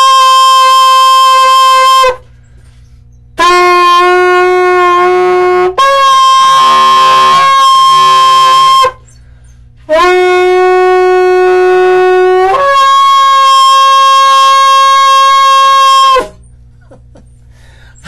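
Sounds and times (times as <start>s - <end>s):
shofar blasts: 0.0s - 16.4s.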